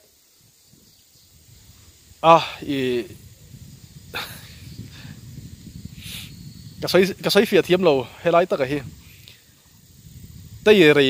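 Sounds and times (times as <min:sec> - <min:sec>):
man speaking: 0:02.2 - 0:03.2, 0:06.8 - 0:08.9, 0:10.7 - 0:11.0
short breathy hisses: 0:05.9 - 0:06.4, 0:09.0 - 0:09.5.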